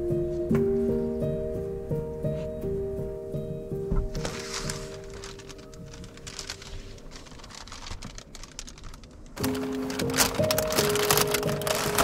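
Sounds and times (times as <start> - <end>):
soft background music: 0.0 - 12.0
window cover crinkling: 4.0 - 12.0.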